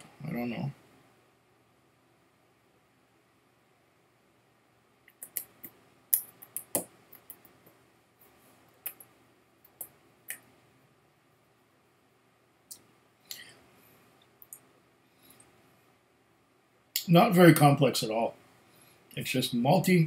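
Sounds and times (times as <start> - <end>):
wet mouth clicks and lip smacks: 5.1 - 7.4, 8.8 - 9.1.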